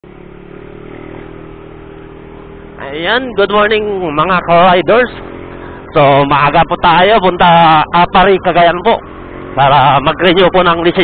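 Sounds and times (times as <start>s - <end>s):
motorcycle engine cruising: 0.0s - 11.0s
road and wind noise: 0.0s - 11.0s.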